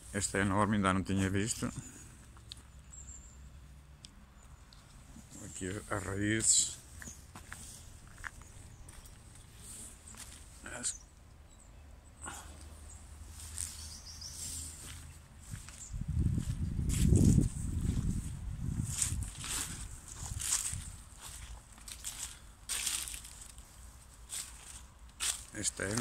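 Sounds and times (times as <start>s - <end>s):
footsteps crunching on soil: 4.9s - 10.7s, 13.3s - 26.0s
low microphone rumble: 15.4s - 22.3s.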